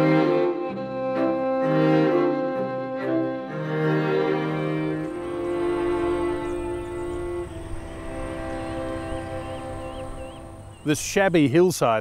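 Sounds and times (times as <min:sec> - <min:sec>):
sustained string chords: 0:00.0 - 0:11.5.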